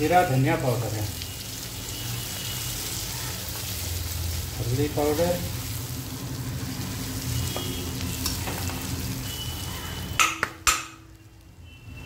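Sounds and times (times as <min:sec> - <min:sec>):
spices sizzling in oil: 0:00.0 - 0:12.0.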